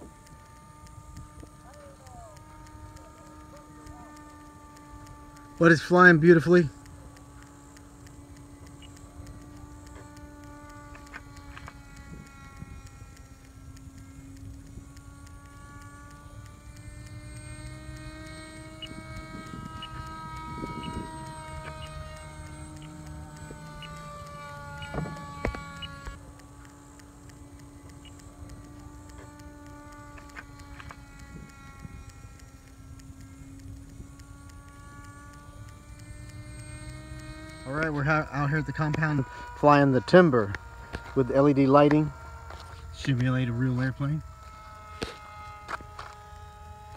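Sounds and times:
model airplane motor whine: 0:00.0 - 0:46.9.

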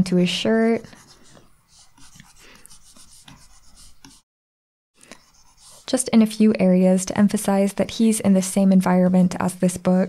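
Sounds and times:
stylus scratching on tablet: 0:00.5 - 0:04.2, 0:05.0 - 0:06.2.

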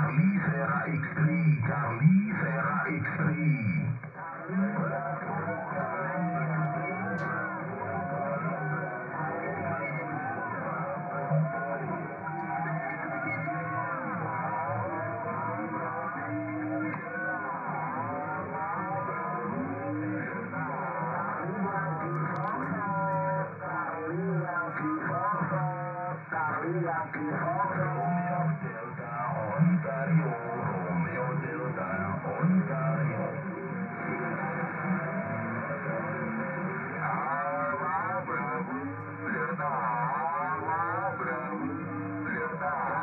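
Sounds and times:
band-limited radio speech: 0:00.0 - 0:43.0.

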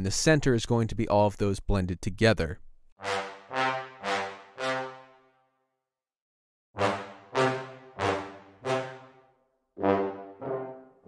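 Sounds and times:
short low brass notes: 0:03.0 - 0:05.2, 0:06.8 - 0:11.0.

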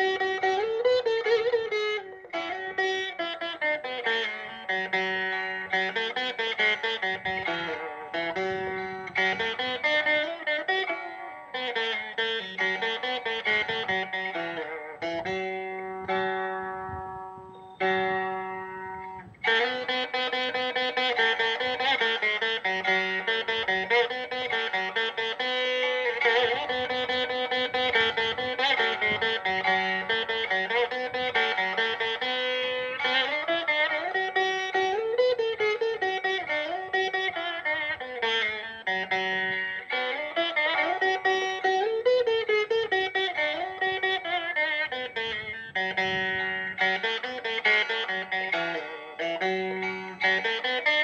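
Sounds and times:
veena playing: 0:00.0 - 0:51.0.

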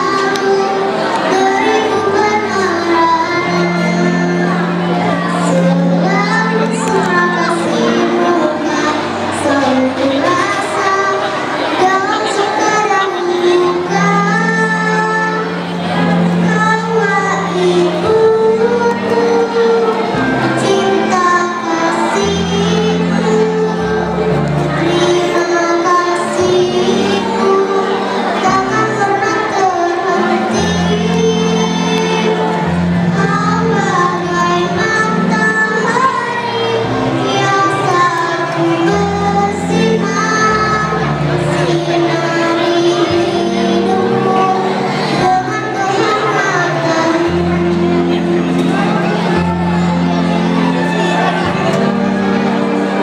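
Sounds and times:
children's choir singing: 0:00.0 - 0:53.0
instrumental accompaniment: 0:00.0 - 0:53.0.

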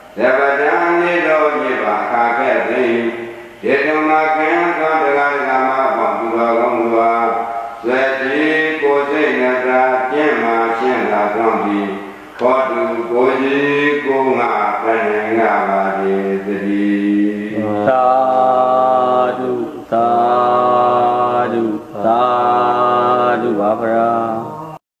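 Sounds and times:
monk chanting: 0:00.0 - 0:24.8.

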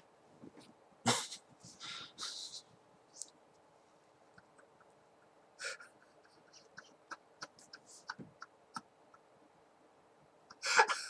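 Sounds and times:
man breathing sharply: 0:01.8 - 0:02.5.

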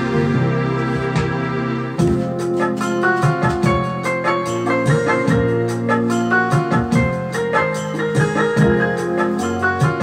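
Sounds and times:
electronic keyboard melody: 0:00.0 - 0:10.0
steady beat: 0:00.0 - 0:10.0.

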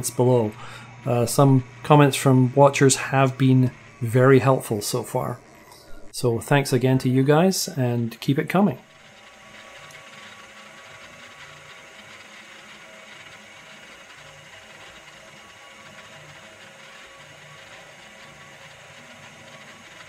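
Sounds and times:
lathe mechanical whine: 0:00.0 - 0:20.0.

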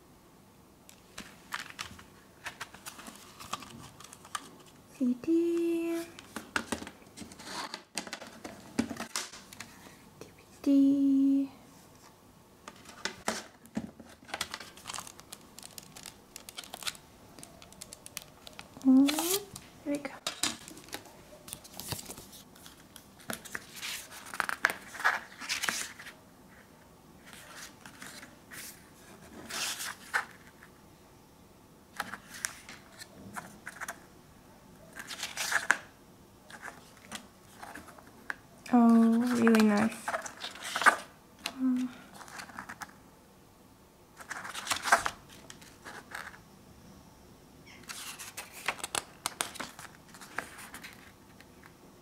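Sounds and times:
paper rustling: 0:01.0 - 0:04.8, 0:12.7 - 0:26.2, 0:27.2 - 0:30.7, 0:34.9 - 0:35.9, 0:36.5 - 0:41.1, 0:42.1 - 0:42.9, 0:44.2 - 0:46.4, 0:47.8 - 0:51.2.

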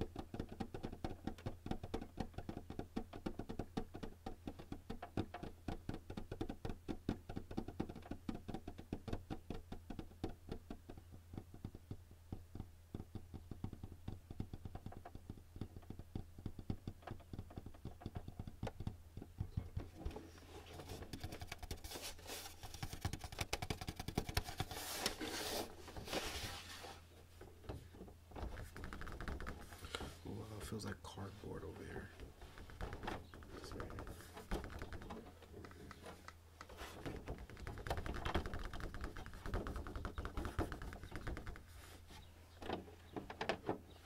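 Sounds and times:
fingertips tapping on plastic: 0:00.0 - 0:21.9, 0:22.5 - 0:24.8, 0:28.4 - 0:30.2, 0:31.7 - 0:43.5.

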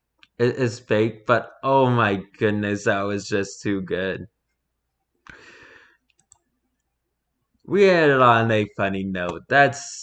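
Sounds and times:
faint small clicks: 0:04.4 - 0:07.0
soft breath into microphone: 0:05.3 - 0:06.0.

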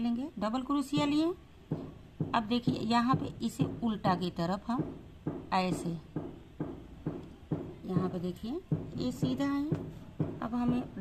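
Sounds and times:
steady knocks: 0:00.9 - 0:11.0.

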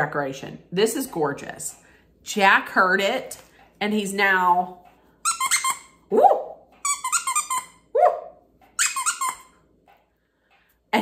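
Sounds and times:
dog toy squeaking: 0:05.2 - 0:07.9, 0:08.8 - 0:09.6.

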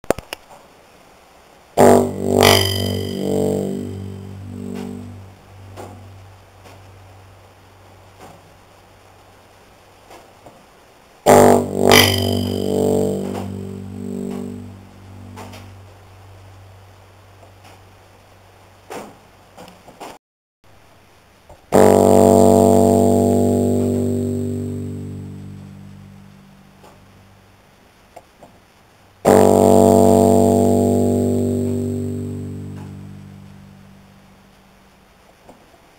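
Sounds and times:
electric piano low note: 0:01.8 - 0:06.8, 0:11.3 - 0:16.0, 0:21.7 - 0:27.1, 0:29.3 - 0:34.3.

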